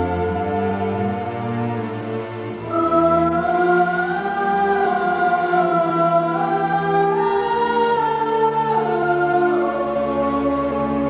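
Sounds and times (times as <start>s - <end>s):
choir holding long notes: 0.0s - 11.0s
orchestral music: 0.0s - 11.0s.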